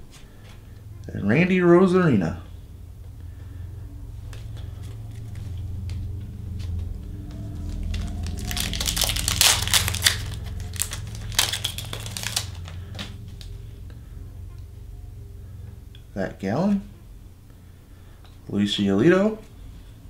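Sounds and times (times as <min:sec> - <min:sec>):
foil wrapper tearing and crinkling: 0:07.7 - 0:13.2.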